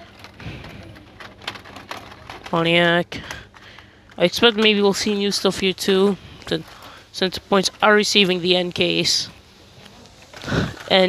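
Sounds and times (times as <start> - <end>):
plastic blister packs crackling: 0.0 - 11.0.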